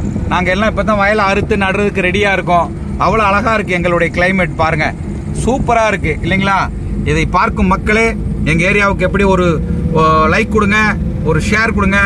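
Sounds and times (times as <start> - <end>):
vehicle driving drone: 0.0 - 12.0
man talking: 0.3 - 12.0.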